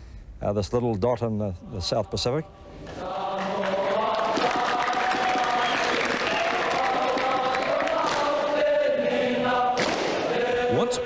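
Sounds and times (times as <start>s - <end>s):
boys singing in unison: 2.1s - 11.0s
hand clapping: 3.4s - 8.4s.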